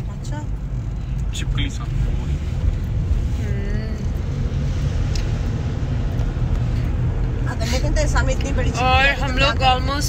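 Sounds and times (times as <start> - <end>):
car cabin road rumble: 0.0 - 10.0.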